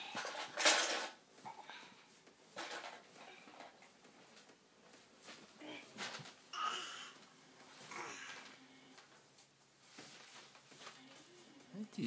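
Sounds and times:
plastic jug rattling with cat food: 0.0s - 1.2s.

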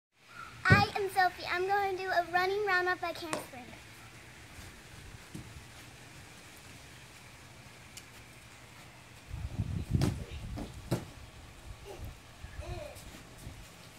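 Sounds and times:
bare feet thudding on a mat: 5.2s - 5.6s, 9.9s - 11.2s.

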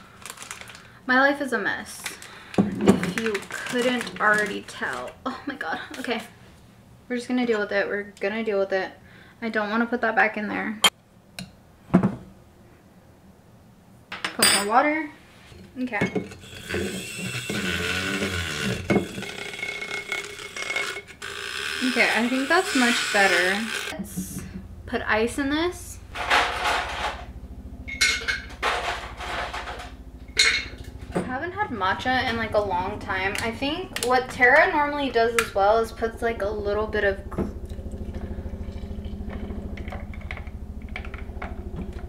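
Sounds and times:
appliance motor humming: 16.3s - 24.9s, 36.3s - 42.0s
milk frother whirring in a glass jar: 16.4s - 24.0s.

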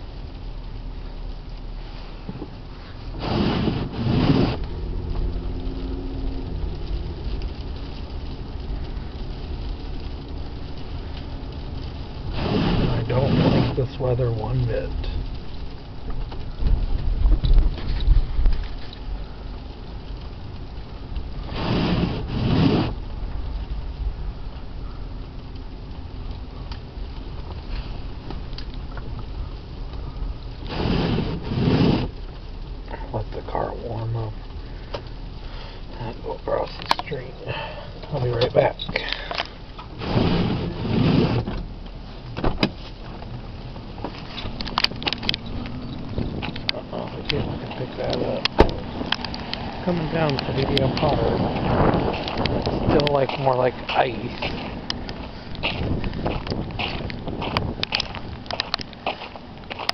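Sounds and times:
car low hum: 0.0s - 59.9s
wipers scraping icy windshield: 0.0s - 59.9s.

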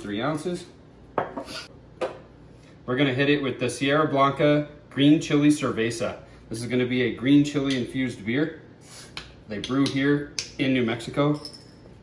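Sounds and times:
bottles knocking on stone countertop: 1.2s - 2.2s.

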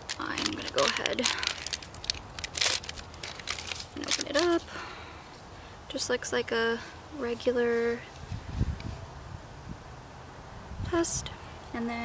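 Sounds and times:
wrapper crinkling: 0.0s - 4.8s.

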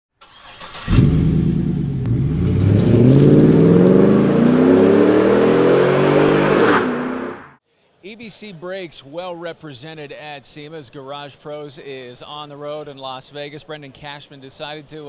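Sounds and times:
car engine revving: 0.7s - 7.6s.

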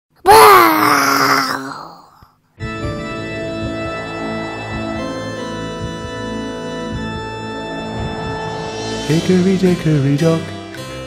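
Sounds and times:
ghostly moaning wail: 0.3s - 10.0s.

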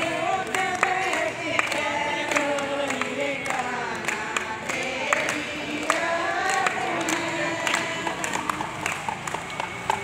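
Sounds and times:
sharp claps: 0.0s - 10.0s
women singing together: 0.0s - 10.0s.

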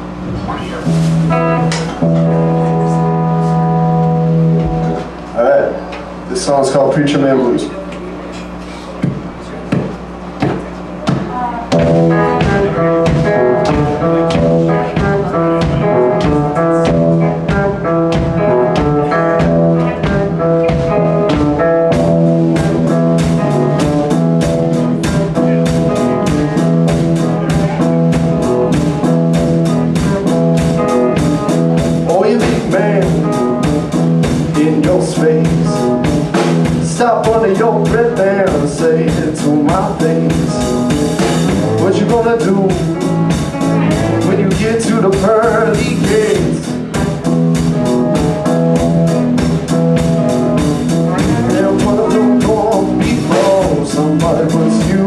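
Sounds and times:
bent electric guitar notes: 0.0s - 55.0s
live blues band playing: 0.0s - 55.0s.

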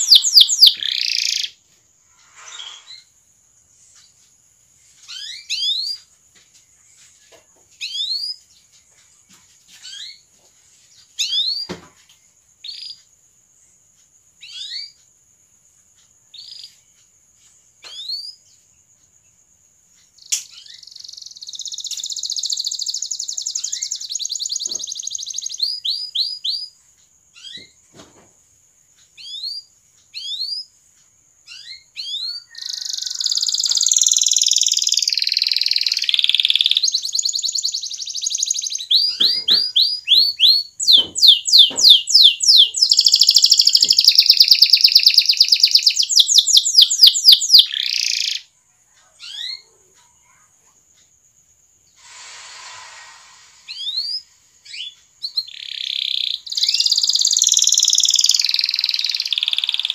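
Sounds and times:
canary singing: 0.0s - 1.6s, 5.0s - 6.1s, 14.4s - 15.0s, 20.2s - 27.8s, 31.4s - 48.5s, 53.7s - 59.9s.

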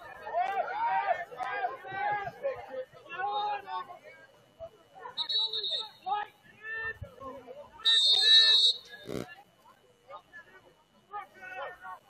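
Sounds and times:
referee's whistle blasts: 5.2s - 6.1s, 7.8s - 9.2s.

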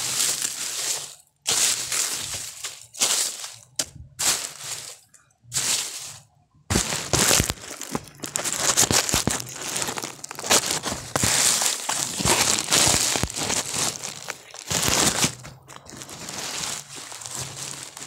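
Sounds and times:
dry leaves being torn off: 0.0s - 5.0s, 5.6s - 18.0s.

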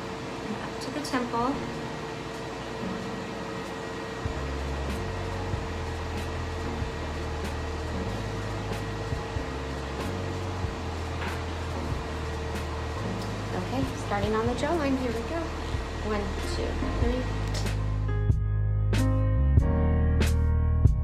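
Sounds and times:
cooling fan hum: 0.0s - 18.5s.

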